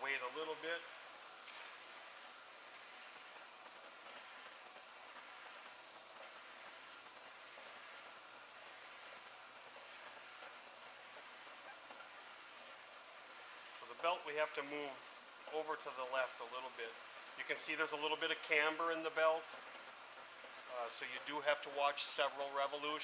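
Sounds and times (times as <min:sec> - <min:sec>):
belt conveyor running: 0:00.0 - 0:23.0.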